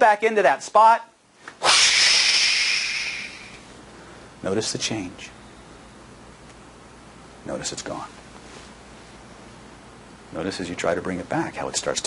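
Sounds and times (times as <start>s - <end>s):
person's forceful breathy hiss: 1.6s - 3.6s.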